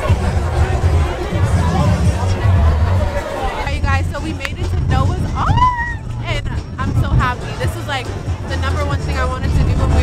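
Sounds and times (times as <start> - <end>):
background music: 0.0 - 10.0
crowd babble: 0.0 - 10.0
woman talking: 3.6 - 10.0.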